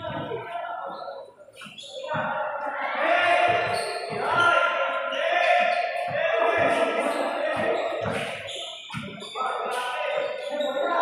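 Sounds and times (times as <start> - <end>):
players shouting: 2.0 - 11.0.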